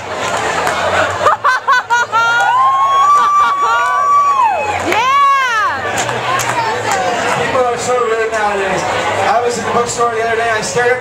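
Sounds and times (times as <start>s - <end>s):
audience laughing: 0.4s - 4.1s
high whoop: 2.2s - 5.8s.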